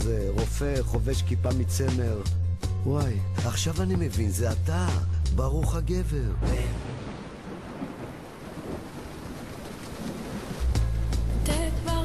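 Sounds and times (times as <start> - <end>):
thunder-like rumble: 6.4 - 12.0
rain-like hiss: 6.5 - 12.0.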